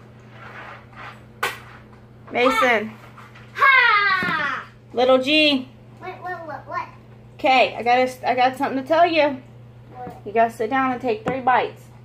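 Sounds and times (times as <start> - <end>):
steady low hum: 4.4 - 12.0.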